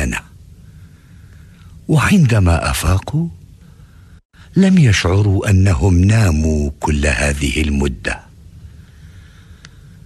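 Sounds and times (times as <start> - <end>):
narrator speaking: 0.0 - 0.4, 1.9 - 3.4, 4.5 - 8.3
faint steady hiss: 0.0 - 10.0.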